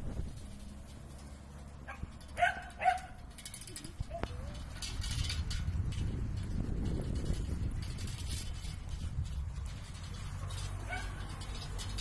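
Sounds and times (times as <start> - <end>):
dog barking: 1.9 - 3.2, 10.9 - 11.2.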